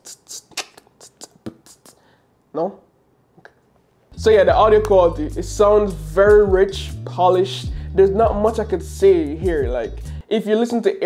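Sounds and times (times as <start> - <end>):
person beatboxing: 0.0 - 2.1.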